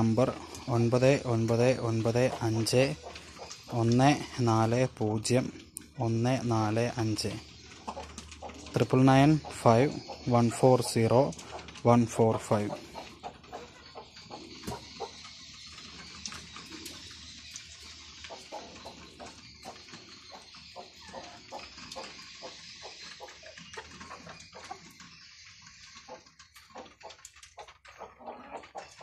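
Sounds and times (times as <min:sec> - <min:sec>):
chickens pecking feed from bowl: 0:00.0 - 0:29.0.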